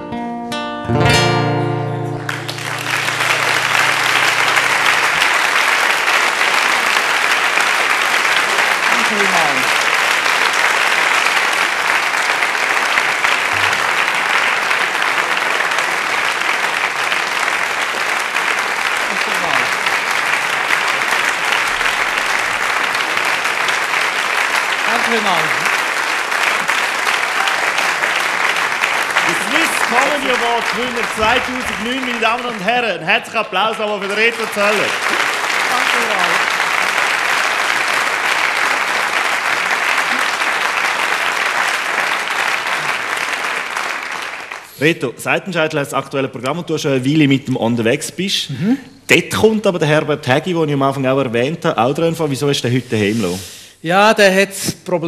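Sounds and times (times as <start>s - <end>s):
acoustic guitar chord ringing: 0.0s - 5.6s
audience applause: 1.2s - 45.6s.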